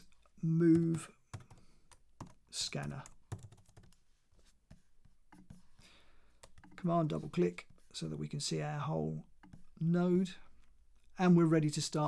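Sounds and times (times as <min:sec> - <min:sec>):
computer keyboard keystrokes: 0:00.7 - 0:04.0.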